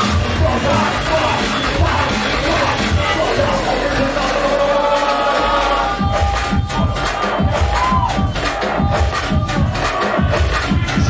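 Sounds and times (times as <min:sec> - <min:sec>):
choir-like synth tones: 0:00.0 - 0:10.3
electronic dance music: 0:00.0 - 0:11.0.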